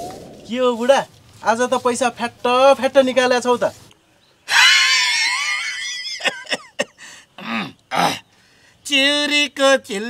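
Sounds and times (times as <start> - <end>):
man's high-pitched squealing laugh: 4.5 - 6.9.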